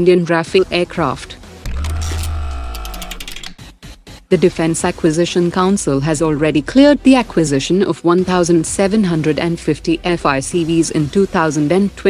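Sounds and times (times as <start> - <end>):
deep bass tone: 1.7 - 3.5
rapid ticks: 1.7 - 3.6.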